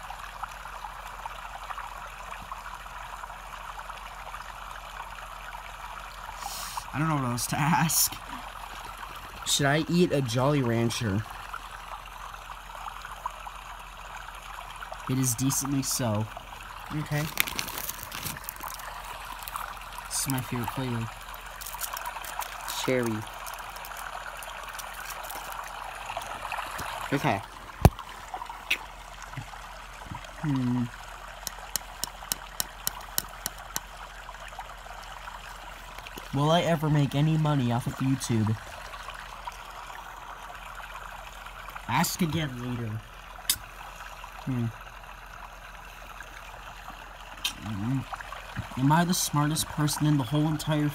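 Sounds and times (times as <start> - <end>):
white noise hiss: 6.2 - 8.6
steady white noise: 6.2 - 11.9
sharp clicks: 31.4 - 33.9.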